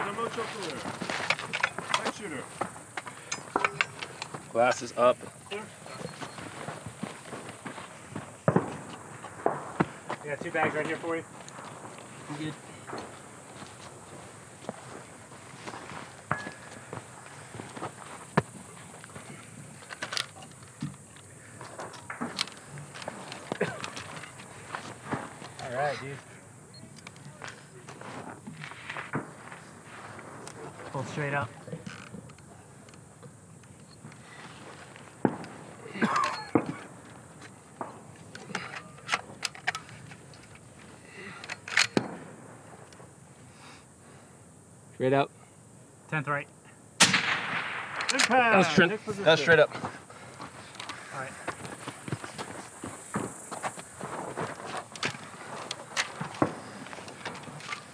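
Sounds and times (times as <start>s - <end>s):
rifle handling clicks and knocks: 0.3s - 5.4s, 15.9s - 25.7s, 26.9s - 29.2s, 31.7s - 34.4s, 37.4s - 42.2s, 47.2s - 48.4s, 50.4s - 51.6s, 54.4s - 57.9s.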